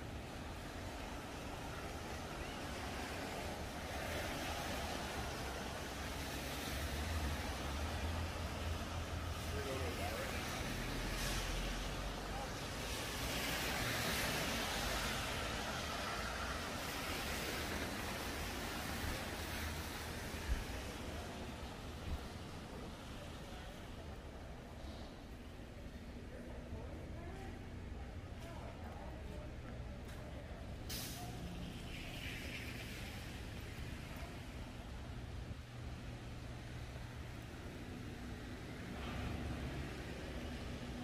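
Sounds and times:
tyres hissing on wet pavement: 0:00.0 - 0:25.6, 0:30.7 - 0:41.0
heavy vehicle engine rumble: 0:00.0 - 0:41.0.

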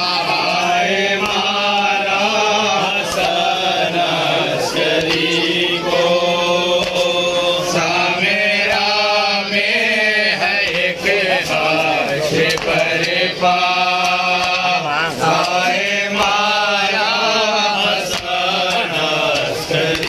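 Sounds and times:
men chanting a lament: 0:00.0 - 0:20.0.

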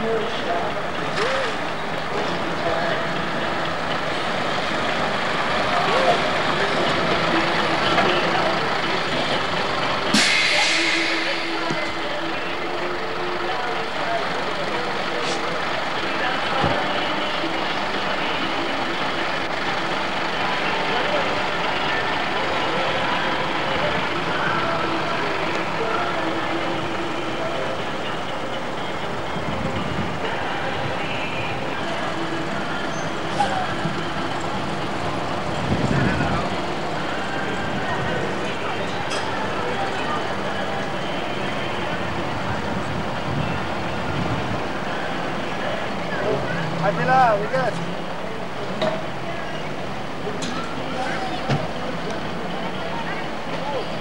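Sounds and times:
truck engine running: 0:00.0 - 0:54.0
loud air hiss: 0:10.1 - 0:12.0.

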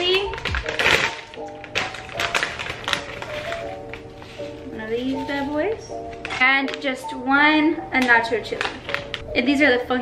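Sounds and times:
plastic bag crinkling: 0:00.0 - 0:06.9, 0:08.3 - 0:09.3
soft background music: 0:00.0 - 0:10.0.

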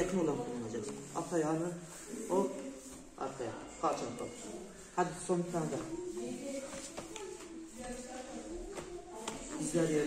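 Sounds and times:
quiet voices talking: 0:00.0 - 0:10.0.

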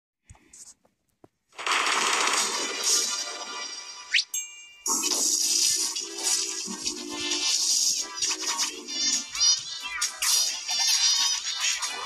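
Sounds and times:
harsh distorted music-like sound: 0:01.6 - 0:04.3, 0:04.9 - 0:12.0.

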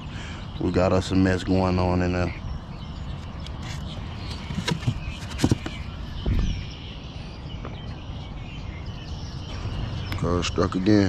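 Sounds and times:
low outdoor noise: 0:00.0 - 0:11.0.

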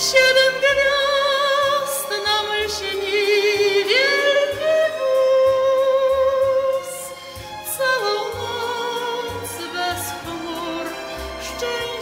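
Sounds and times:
soft musical accompaniment: 0:00.0 - 0:12.0
woman singing with vibrato: 0:00.0 - 0:12.0.

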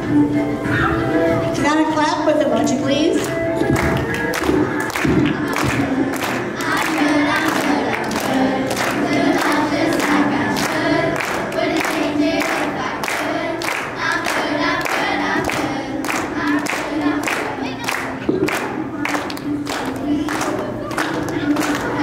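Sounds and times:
children's choir singing: 0:03.2 - 0:22.0
people clapping along: 0:03.2 - 0:22.0.

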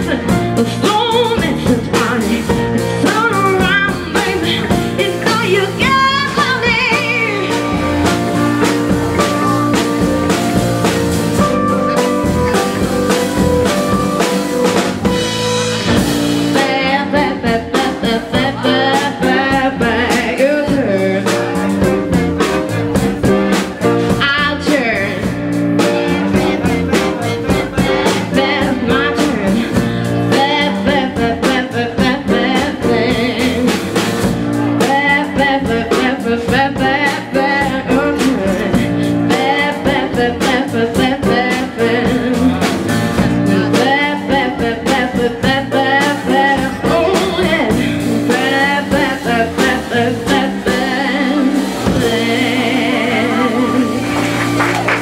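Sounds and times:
woman singing into microphone: 0:00.0 - 0:09.9, 0:16.0 - 0:22.2, 0:24.1 - 0:26.7, 0:27.5 - 0:54.3
drum kit: 0:00.0 - 0:55.0
electric bass: 0:00.0 - 0:55.0
grand piano: 0:00.0 - 0:55.0.

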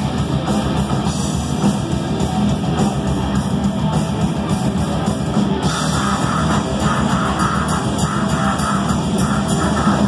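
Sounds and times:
metal band playing live: 0:00.0 - 0:10.0.

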